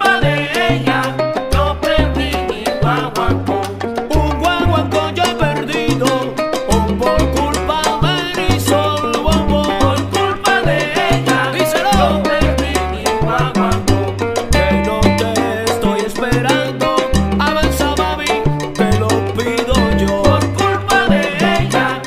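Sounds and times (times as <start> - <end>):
salsa music: 0.0 - 22.0.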